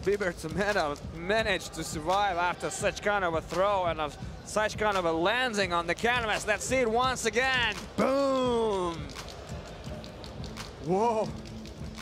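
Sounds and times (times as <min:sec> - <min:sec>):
arena background noise: 0:00.0 - 0:12.0
faint music: 0:00.0 - 0:12.0.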